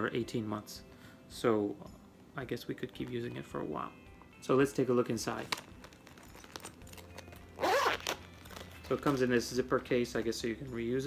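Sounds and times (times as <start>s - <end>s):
plastic pouch zipper opening: 5.4s - 9.2s.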